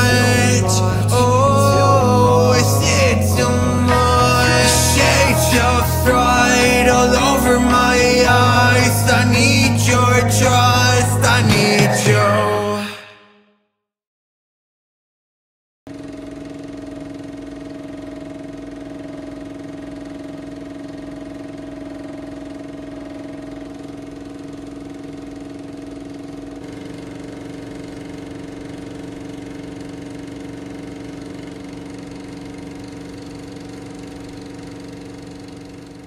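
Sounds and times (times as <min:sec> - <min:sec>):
mechanical hum with flutter: 0:00.0 - 0:12.2, 0:15.9 - 0:36.0.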